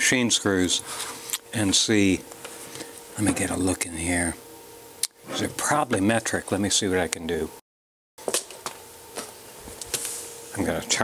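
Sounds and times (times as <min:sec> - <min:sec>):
faint steady hum: 0:00.0 - 0:07.6, 0:08.2 - 0:11.0.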